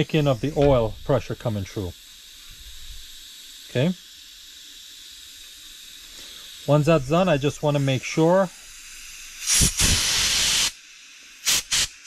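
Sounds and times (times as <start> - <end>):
compressed air hissing: 0.0 - 12.0.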